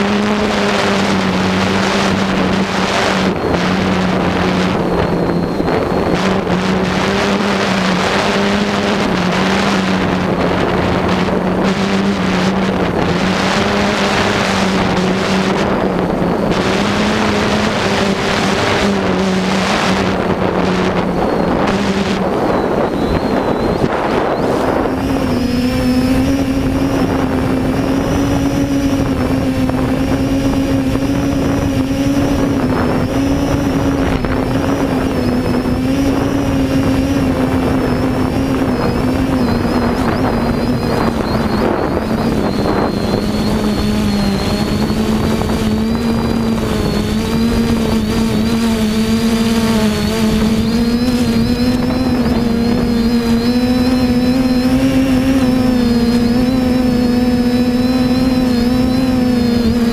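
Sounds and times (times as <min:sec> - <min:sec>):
drone motors whirring: 0:00.0 - 0:59.9.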